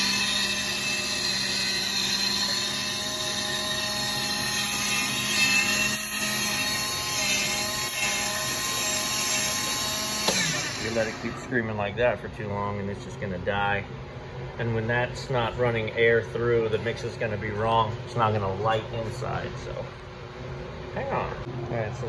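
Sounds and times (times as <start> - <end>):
blower motor screaming whine: 0.0 - 11.7.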